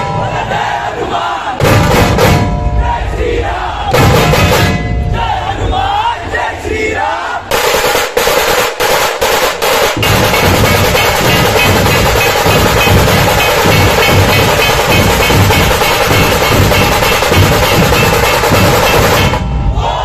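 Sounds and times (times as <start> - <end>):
crowd shouting in unison: 0.0 - 7.5, 17.8 - 20.0
rapid tasha drum rolls: 0.0 - 20.0
dhol drumming: 1.6 - 3.2, 3.9 - 5.5, 7.5 - 19.8.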